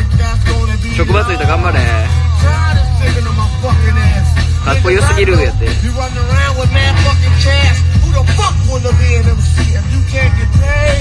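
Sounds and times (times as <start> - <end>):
hip hop music on car stereo: 0.0 - 11.0.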